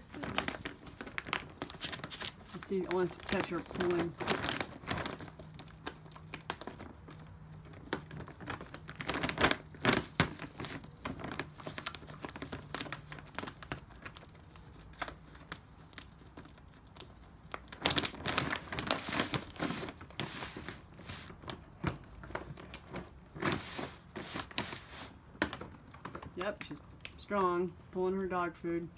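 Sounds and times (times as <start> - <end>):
plastic bag crinkling: 0.0 - 27.2.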